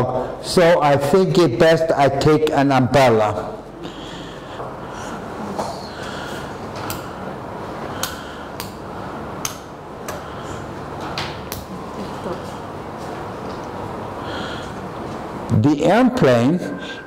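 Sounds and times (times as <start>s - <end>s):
steady room hum: 0.0s - 17.0s.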